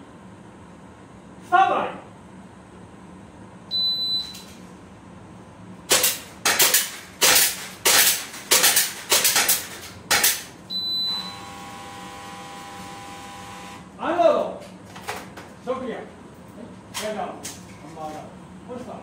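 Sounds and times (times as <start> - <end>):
electronic timer beep: 3.7 - 4.4, 10.7 - 13.8
airsoft pistol shots: 5.9 - 10.4
shots knocking down plates: 5.9 - 10.5
steady multi-tone sound: 10.7 - 13.9.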